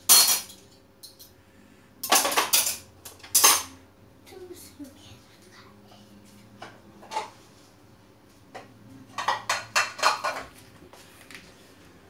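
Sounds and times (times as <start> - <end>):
metal cutlery clattering: 0.0 - 1.3, 2.0 - 3.7.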